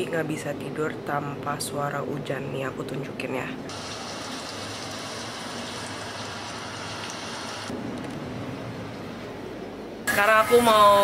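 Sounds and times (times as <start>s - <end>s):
rain falling: 3.7s - 9.5s.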